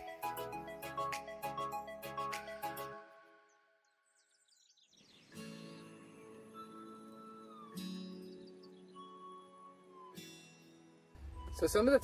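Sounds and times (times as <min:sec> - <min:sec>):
quiet background music: 0:04.6 - 0:12.0.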